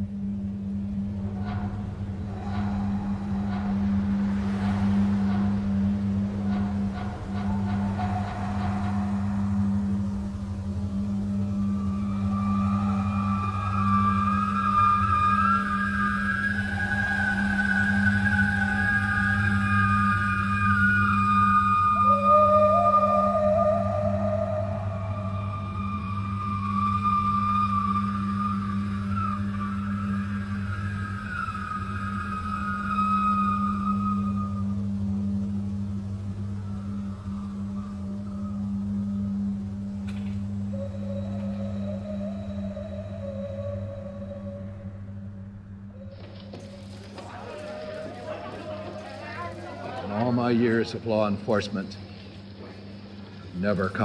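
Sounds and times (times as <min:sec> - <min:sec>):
low drone: 0:00.0 - 0:54.0
wavering high tones: 0:00.0 - 0:54.0.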